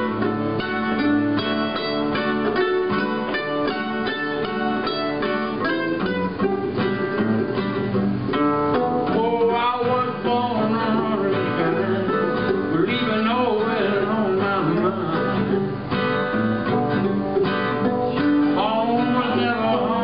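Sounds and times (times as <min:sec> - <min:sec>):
acoustic guitar: 0:00.0 - 0:20.0
mandolin: 0:00.0 - 0:20.0.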